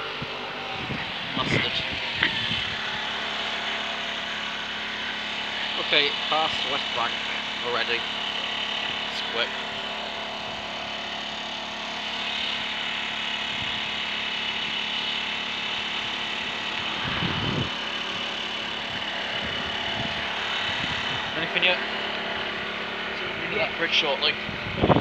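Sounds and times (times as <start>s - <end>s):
vehicle engine idling: 0.0s - 25.0s.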